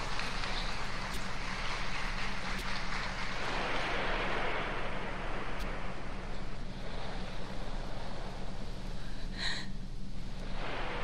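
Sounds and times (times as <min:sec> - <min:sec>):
theatre audience applauding: 0:00.0 - 0:03.9
low recording hum: 0:00.0 - 0:11.0.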